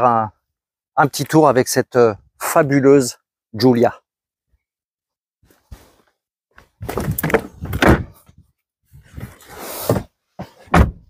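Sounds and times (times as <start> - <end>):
car door unlatching and opening: 10.6 - 11.0.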